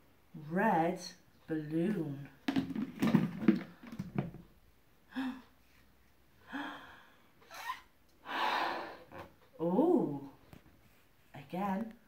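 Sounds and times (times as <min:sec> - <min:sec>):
plastic lid knocking on bucket: 0:02.4 - 0:04.4
woman inhaling sharply: 0:08.2 - 0:09.1.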